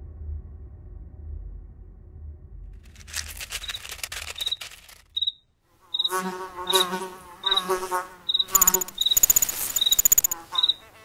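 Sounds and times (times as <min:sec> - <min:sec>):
low rumble: 0:00.0 - 0:03.0
insect rapid clicking: 0:02.8 - 0:10.9
insect high chirp: 0:03.1 - 0:11.0.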